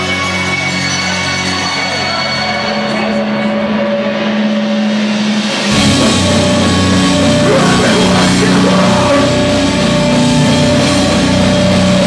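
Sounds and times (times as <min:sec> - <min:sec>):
metal band with drums: 0:02.8 - 0:12.0
droning amplified chord: 0:05.7 - 0:12.0.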